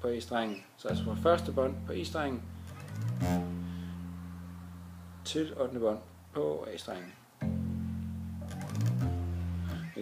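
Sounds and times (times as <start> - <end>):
string and fret noise: 0.2 - 10.0
bass guitar note: 0.9 - 6.3, 7.4 - 10.0.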